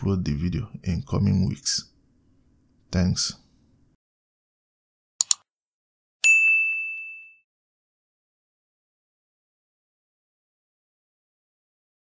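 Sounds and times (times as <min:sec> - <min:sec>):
double mouse click: 0:05.2 - 0:05.4
bright bell ding: 0:06.2 - 0:07.4.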